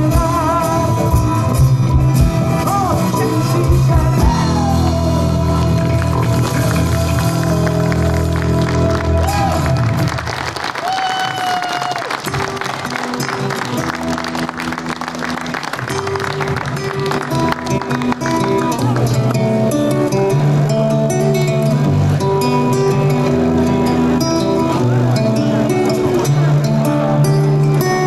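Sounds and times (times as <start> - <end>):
man singing: 0.0 - 6.4
nylon-string acoustic guitar: 0.0 - 10.2, 12.2 - 28.0.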